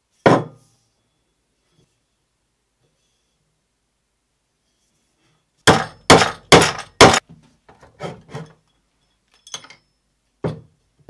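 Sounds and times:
hammer striking nail into wood: 5.7s - 7.2s.

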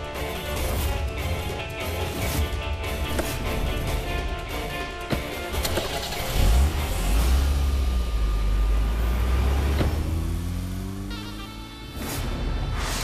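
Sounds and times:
dramatic background music: 0.0s - 13.0s
car engine rumbling: 2.9s - 12.7s.

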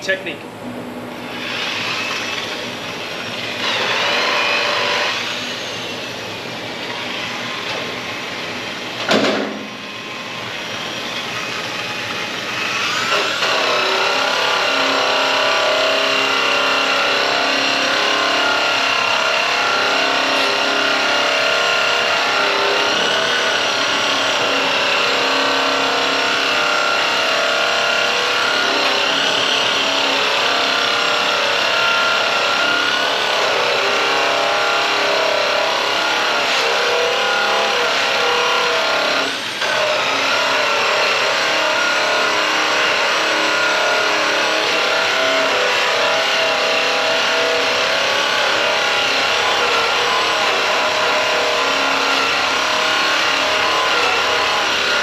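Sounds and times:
electric polisher motor whine: 9.6s - 55.0s.

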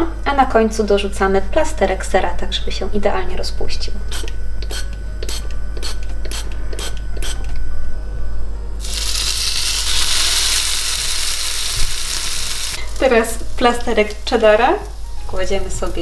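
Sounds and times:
patty sizzling in frying pan: 8.8s - 16.0s.

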